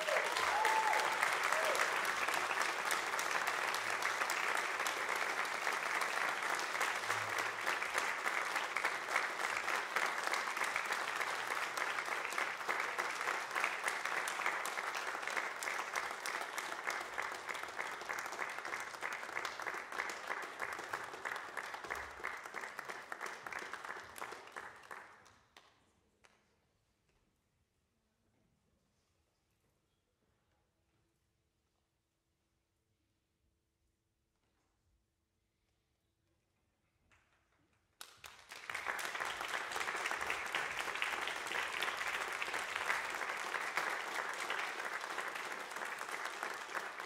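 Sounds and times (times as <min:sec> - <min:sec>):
short cheers: 0:00.0 - 0:02.4
audience applause: 0:00.0 - 0:25.2, 0:38.0 - 0:47.0.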